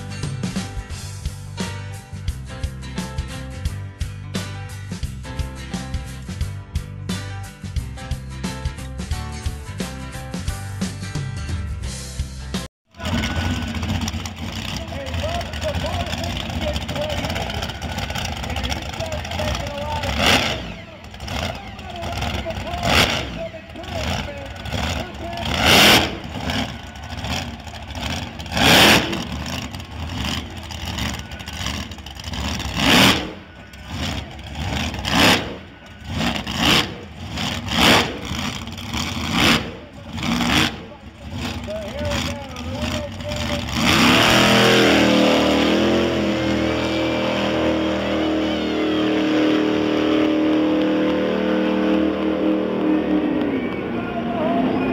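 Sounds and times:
loud sudden engine bursts: 12.9s - 54.9s.

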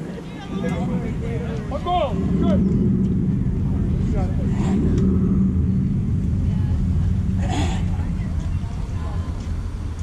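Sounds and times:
faint distant voices: 0.0s - 10.0s
low rumble: 0.0s - 10.0s.

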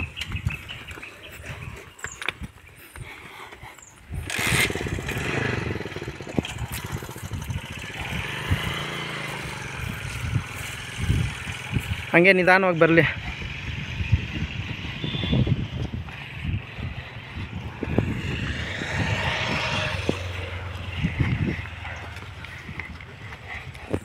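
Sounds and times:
hooves on asphalt: 0.0s - 24.0s
motorcycle engine passing: 4.1s - 24.0s.

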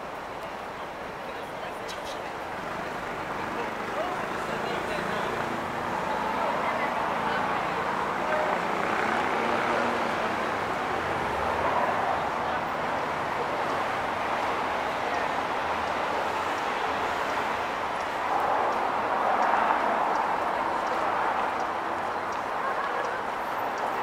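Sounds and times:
traffic noise: 0.0s - 24.0s
voices of passers-by: 0.0s - 24.0s.

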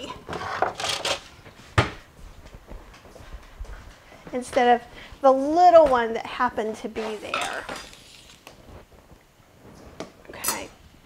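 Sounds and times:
rummaging in kitchen cabinet: 0.0s - 1.9s.

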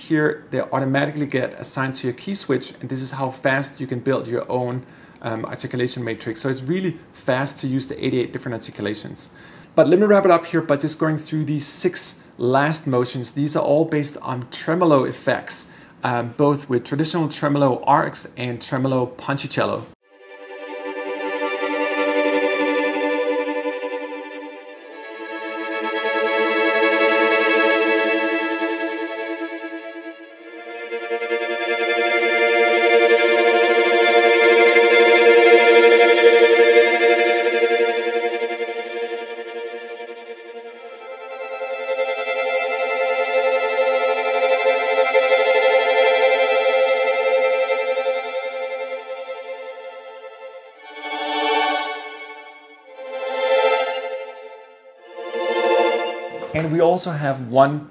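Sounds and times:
solo violin tremolo chords: 0.7s - 10.4s, 20.0s - 56.8s.

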